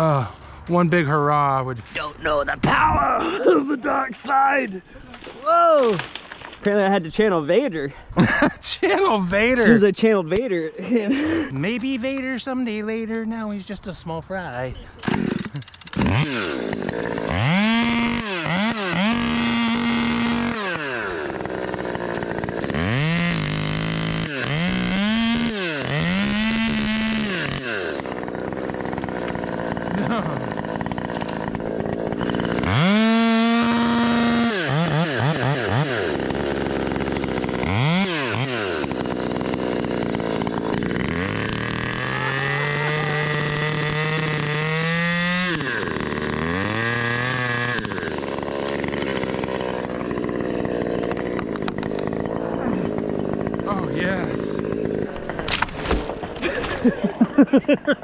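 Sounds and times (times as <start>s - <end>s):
chainsaw cutting wood: 1.9s - 7.7s, 9.3s - 12.6s, 15.0s - 58.0s
chainsaw revving: 3.2s - 12.9s, 15.0s - 58.0s.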